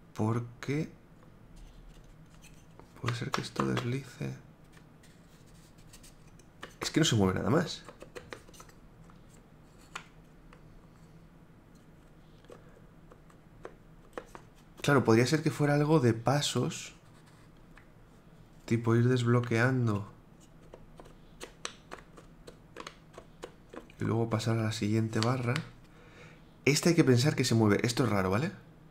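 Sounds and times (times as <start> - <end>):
wooden bars clicking and rubbing: 1.6 - 4.0, 4.7 - 7.0, 7.6 - 10.7, 11.8 - 14.6, 19.9 - 24.0
wooden clicks and taps: 3.0 - 4.0, 7.8 - 9.2, 12.4 - 14.5.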